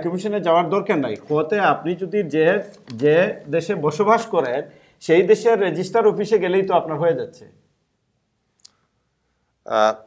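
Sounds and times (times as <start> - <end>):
man saying aah: 9.7 - 10.0.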